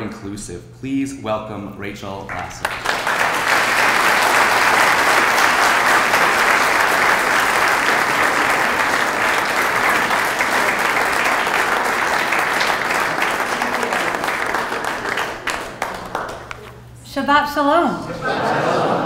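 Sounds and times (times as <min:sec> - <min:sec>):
audience applauding: 0:02.3 - 0:17.0.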